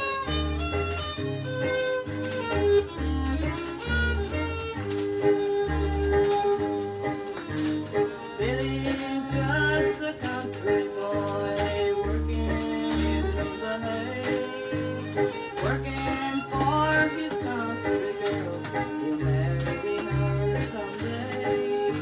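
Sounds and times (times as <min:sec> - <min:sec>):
country music on a record: 0:00.0 - 0:22.0
fiddle melody: 0:00.0 - 0:22.0
guitar: 0:00.0 - 0:22.0.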